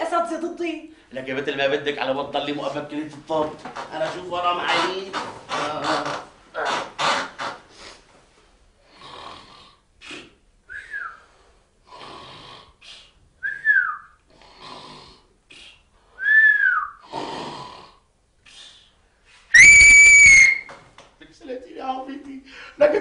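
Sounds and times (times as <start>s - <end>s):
man snoring: 8.9s - 10.3s, 11.8s - 12.9s, 14.3s - 15.7s, 17.0s - 18.1s
falling whistle: 13.4s - 14.1s, 16.2s - 17.0s, 19.5s - 20.8s
loud steady whistle: 16.2s - 17.0s, 19.5s - 20.8s.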